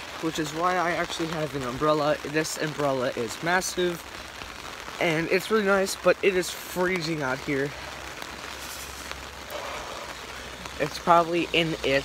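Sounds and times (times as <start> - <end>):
rain on an umbrella: 0.0 - 12.0.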